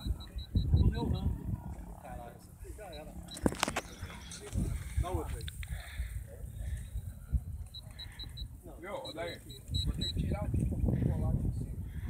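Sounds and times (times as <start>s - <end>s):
wind rumble on microphone: 0.0s - 2.4s, 3.4s - 12.0s.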